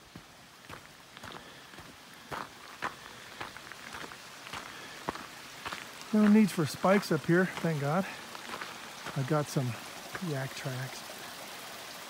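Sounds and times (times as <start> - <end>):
footsteps on frozen dirt: 0.0 - 10.3
faint steady hiss: 0.0 - 12.0.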